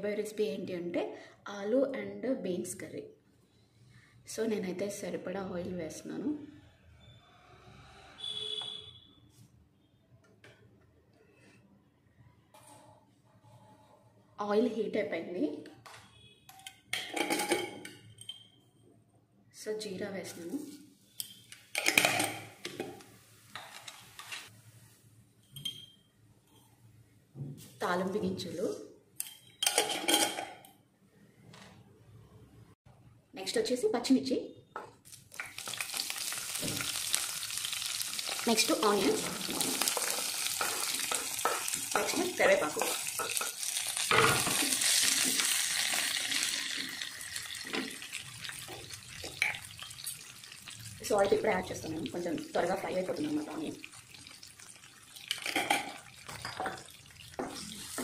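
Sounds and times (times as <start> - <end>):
seeds sizzling in hot oil: 35.1 - 58.0.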